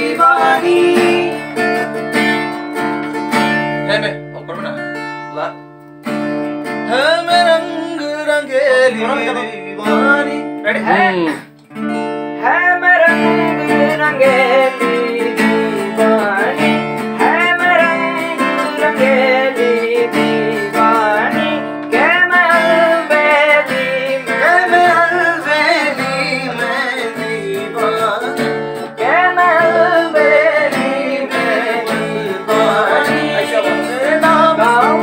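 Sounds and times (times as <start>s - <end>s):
person singing: 0.0s - 2.0s, 6.9s - 11.5s, 12.4s - 35.0s
acoustic guitar strumming chords: 0.0s - 35.0s.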